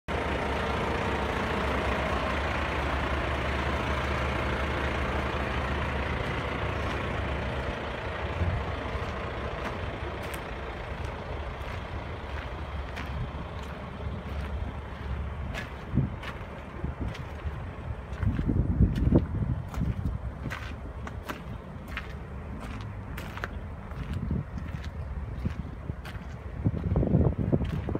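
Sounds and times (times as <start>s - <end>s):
vehicle engine rumbling: 0.1s - 27.9s.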